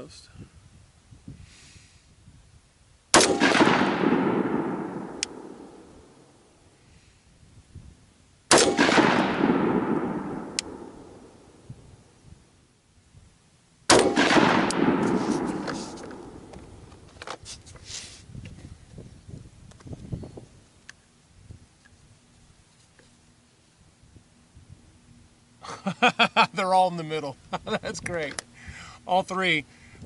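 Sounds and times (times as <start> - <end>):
rifle shots echoing: 3.1 - 6.4, 8.5 - 11.7, 13.9 - 17.0
gun handling clicks: 5.0 - 5.8, 9.9 - 10.9, 13.9 - 17.4.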